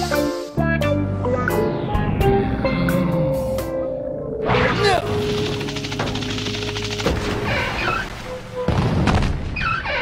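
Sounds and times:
background music: 0.0s - 9.0s.

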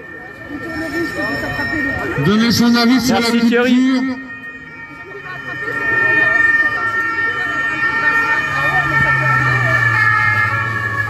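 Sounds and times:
people's voices: 0.0s - 11.0s
police siren: 0.0s - 11.0s.

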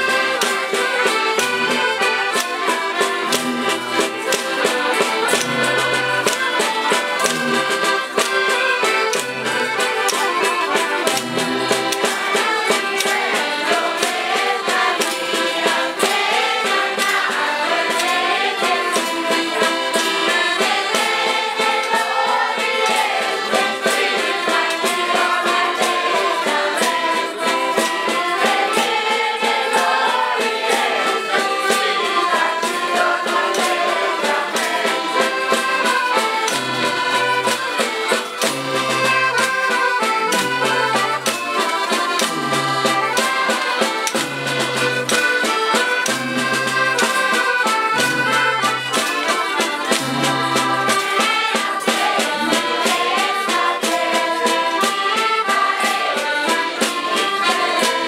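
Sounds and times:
accordions playing folk tune: 0.0s - 58.0s
crowd singing along: 0.0s - 58.0s
tambourine and hand percussion: 0.0s - 58.0s.

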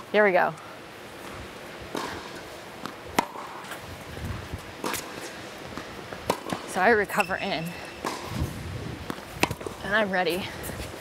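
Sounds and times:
tennis ball bouncing: 1.8s - 3.8s, 4.8s - 10.4s
tennis ball struck by racquets: 1.9s - 3.8s, 4.8s - 9.8s.

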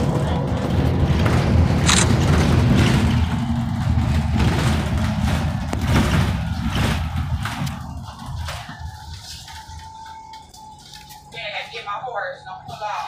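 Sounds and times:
bus diesel engine rumbling: 0.0s - 13.0s.

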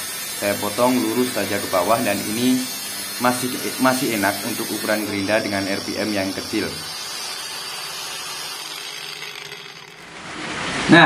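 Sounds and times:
angle grinder cutting steel: 0.0s - 10.9s.

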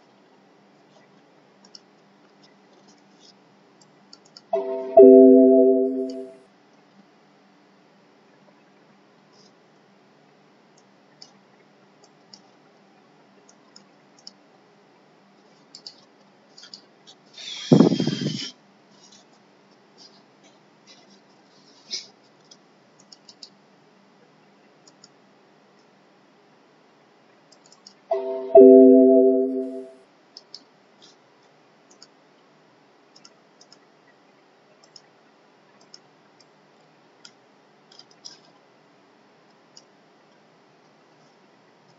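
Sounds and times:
computer mouse clicking: 1.6s - 1.9s, 3.8s - 4.5s, 13.5s - 14.4s, 15.7s - 16.0s, 22.4s - 23.6s, 24.8s - 25.2s, 27.5s - 28.0s, 31.9s - 32.2s, 33.1s - 33.8s, 34.8s - 35.1s, 35.8s - 36.0s
chord of steady tones: 4.6s - 6.4s, 28.1s - 29.9s.

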